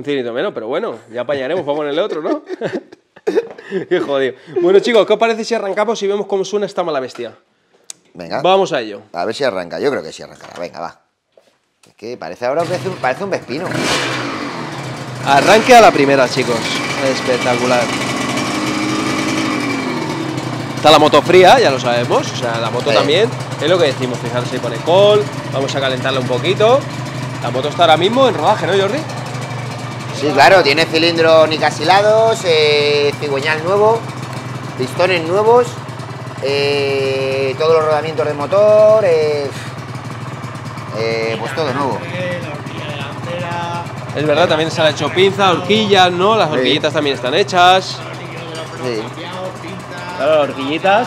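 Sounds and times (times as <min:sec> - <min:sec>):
two-stroke engine idling: 0:12.6 - 0:51.0.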